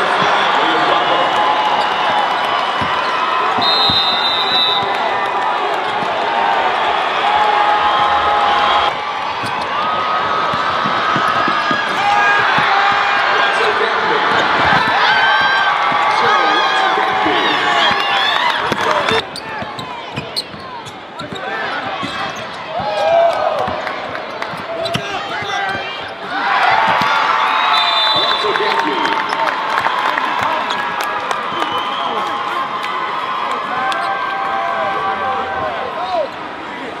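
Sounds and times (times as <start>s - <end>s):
crowd noise: 0.0s - 37.0s
long high whistle blast: 3.6s - 5.0s.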